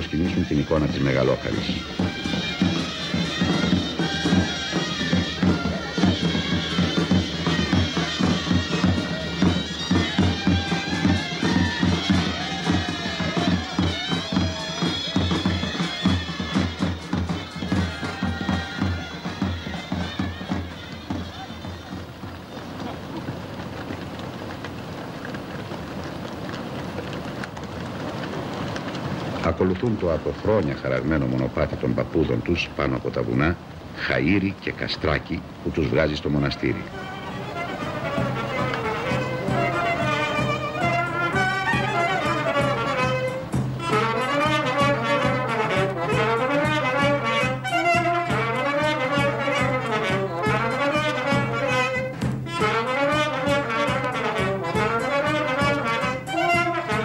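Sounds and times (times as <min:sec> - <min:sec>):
reedy wind melody: 0:00.0 - 0:30.9, 0:31.6 - 0:57.0
drum beating: 0:00.0 - 0:32.1, 0:35.9 - 0:57.0.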